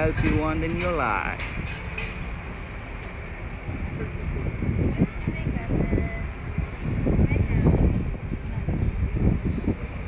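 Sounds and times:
wind buffeting microphone: 0.0s - 10.0s
faint voices: 3.0s - 10.0s.

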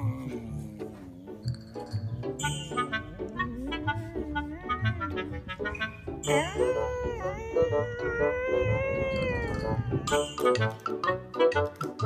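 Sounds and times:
background music: 0.0s - 12.0s
dog howling: 2.9s - 5.5s, 6.4s - 10.2s.

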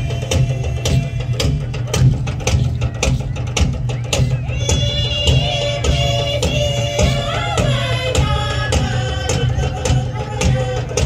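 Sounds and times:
fast percussion music: 0.0s - 11.0s.

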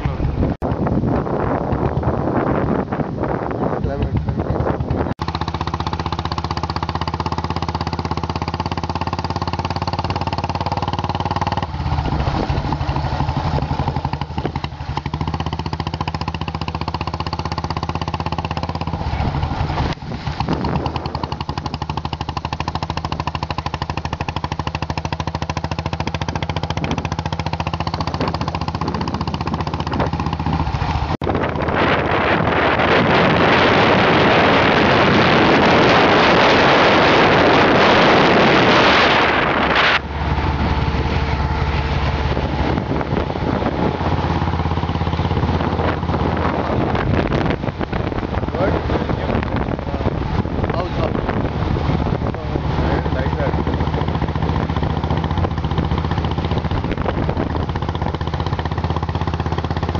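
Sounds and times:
motorcycle engine running: 0.0s - 59.9s
wind rushing over microphone: 0.0s - 59.9s.

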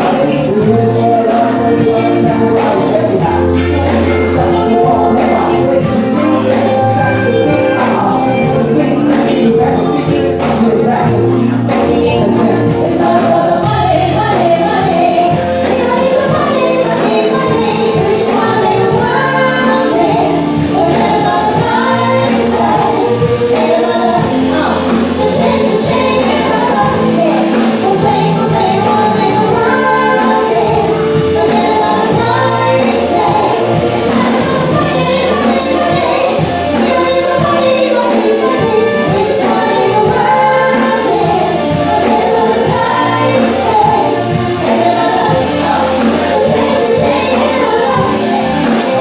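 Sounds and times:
drum kit beat: 0.0s - 49.0s
electric bass guitar: 0.0s - 49.0s
keyboard: 0.0s - 49.0s
pop band playing: 0.0s - 49.0s
singers holding notes in harmony: 0.0s - 49.0s.

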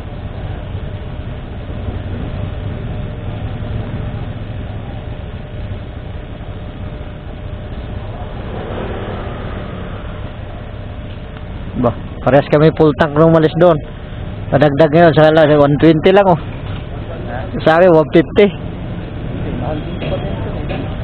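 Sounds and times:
motorcycle engine idling: 0.0s - 12.3s.

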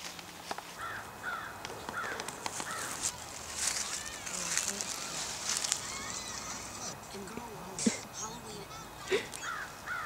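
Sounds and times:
crows cawing: 0.8s - 7.0s, 8.5s - 10.0s.

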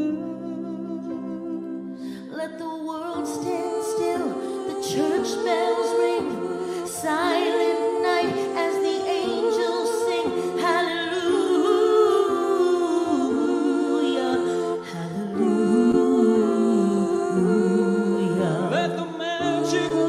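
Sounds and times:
woman and man singing duet: 0.0s - 20.0s.

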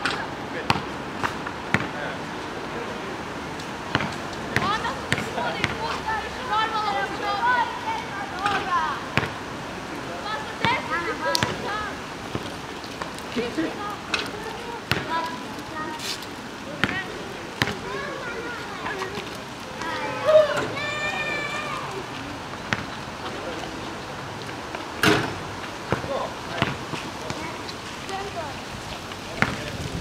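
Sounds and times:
voices talking: 0.0s - 30.0s
basketball bouncing on asphalt: 0.6s - 2.0s, 3.8s - 6.0s, 8.4s - 9.4s, 10.5s - 13.1s, 14.2s - 15.6s, 16.7s - 18.2s, 22.6s - 23.0s, 24.8s - 27.5s, 29.3s - 29.8s.

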